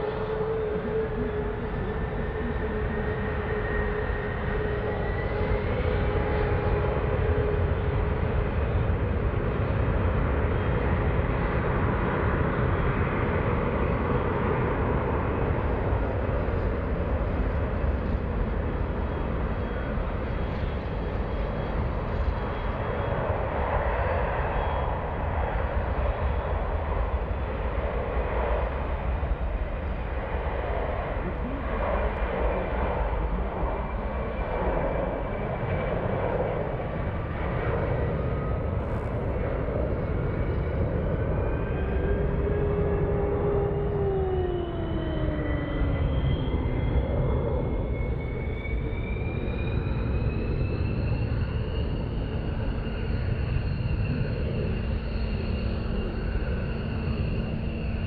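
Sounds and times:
engine whine gliding in pitch: 0.0s - 58.0s
jet engines roaring: 0.0s - 58.0s.

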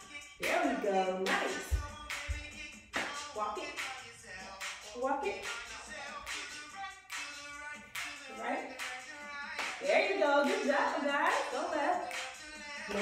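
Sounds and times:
hip-hop song with rapping: 0.0s - 13.0s
sharp claps in beat: 0.4s - 4.0s, 4.6s - 11.5s, 12.1s - 13.0s.

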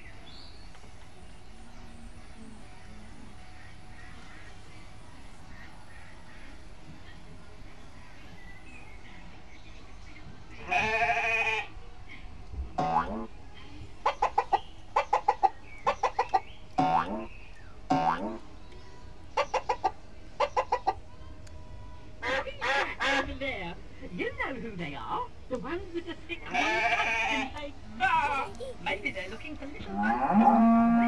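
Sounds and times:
recorded chicken clucking: 12.8s - 13.3s, 14.0s - 17.3s, 19.3s - 21.1s, 22.2s - 23.4s.

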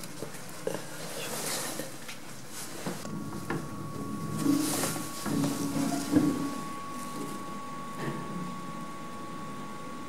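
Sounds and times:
lift machinery whine and hum: 3.0s - 10.0s.

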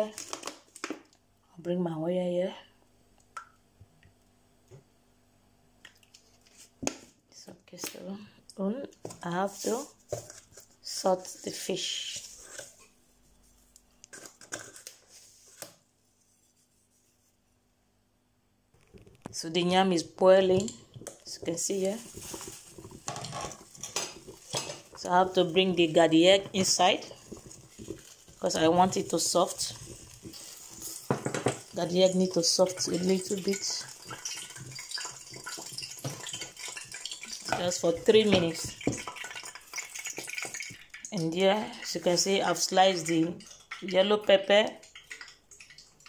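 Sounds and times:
water boiling in a pot: 6.0s - 15.6s, 18.8s - 46.0s
hands rustling salting fish: 21.5s - 31.1s
pot knocking and clicking: 26.4s - 31.8s, 32.7s - 41.2s.

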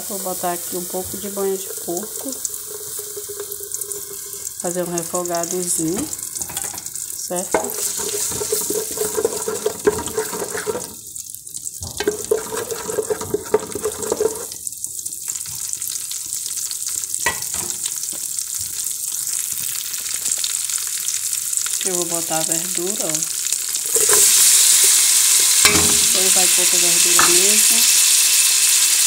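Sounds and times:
garlic sizzling in a pot: 0.0s - 29.0s.

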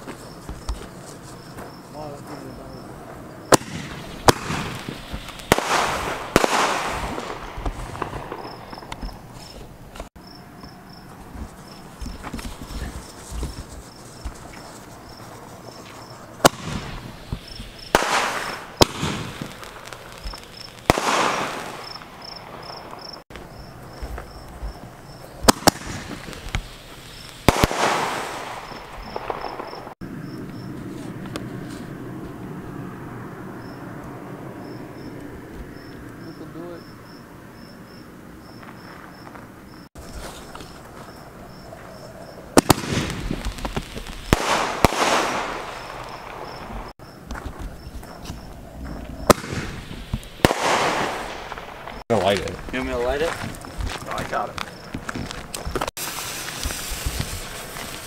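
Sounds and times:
fireworks hiss and crackle: 0.0s - 10.2s, 10.9s - 32.4s, 38.5s - 58.0s
fireworks banging: 0.0s - 31.9s, 38.5s - 58.0s
crickets chirping: 0.0s - 58.0s.

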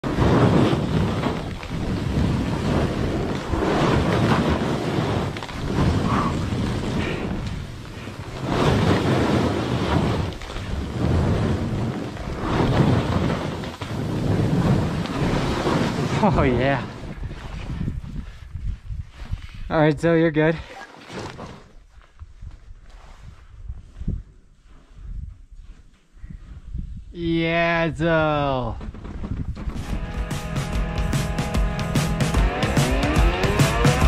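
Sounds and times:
wind buffeting microphone: 0.0s - 20.6s, 21.6s - 30.1s
snowboard scraping on snow: 0.1s - 17.8s, 29.7s - 34.0s.

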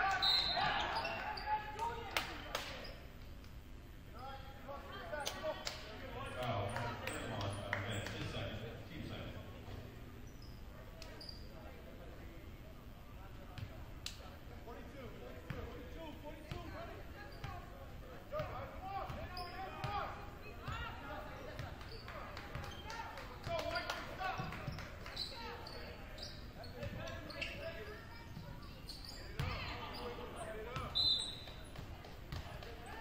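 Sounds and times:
sneaker squeaks: 0.0s - 1.9s, 2.7s - 3.2s, 7.0s - 8.4s, 9.6s - 11.7s, 16.5s - 17.7s, 18.4s - 33.0s.

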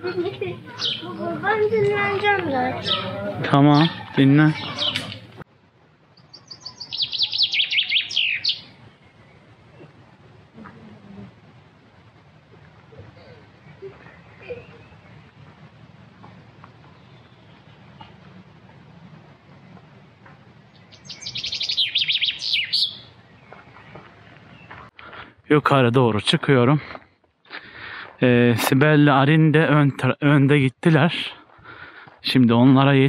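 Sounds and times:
songbird singing: 0.0s - 5.4s, 6.1s - 11.3s, 12.6s - 25.0s.

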